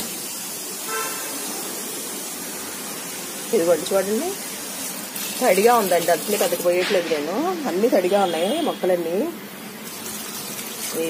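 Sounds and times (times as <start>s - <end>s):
liquid pouring onto plants: 0.0s - 7.4s, 9.8s - 11.0s
woman talking: 3.5s - 4.4s, 5.4s - 9.4s.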